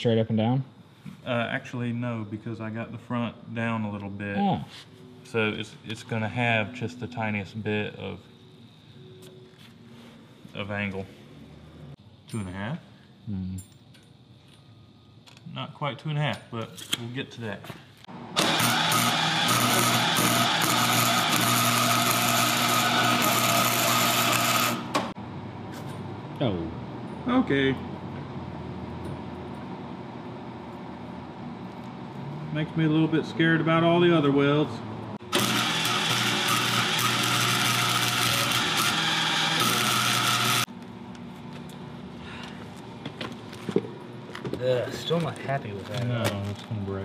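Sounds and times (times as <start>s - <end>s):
arc welder crackling buzz: 18.1s - 25.2s, 35.2s - 42.0s.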